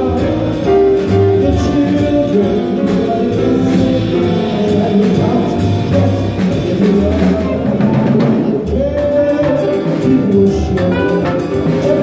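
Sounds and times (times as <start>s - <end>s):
drum kit and cymbals: 0.0s - 12.0s
jazz band playing: 0.0s - 12.0s.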